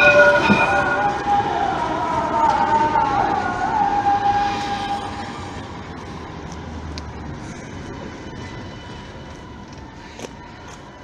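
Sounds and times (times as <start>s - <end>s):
traffic noise: 0.0s - 11.0s
tram on street rails: 0.0s - 11.0s.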